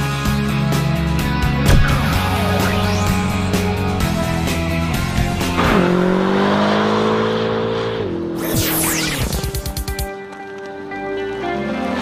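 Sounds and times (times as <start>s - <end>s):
car engine at high revs: 1.7s - 9.4s.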